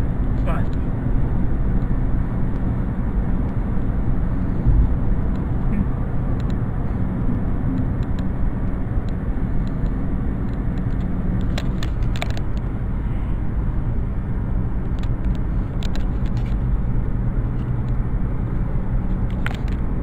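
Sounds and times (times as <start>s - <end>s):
car engine and tyres rumbling: 0.0s - 20.0s.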